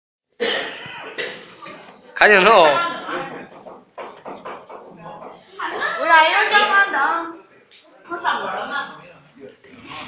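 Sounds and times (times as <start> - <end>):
person coughing: 0.4 - 1.5.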